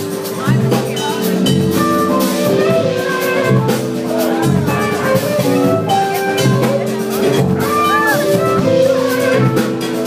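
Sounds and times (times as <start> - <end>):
jazz fusion band playing: 0.0 - 10.0.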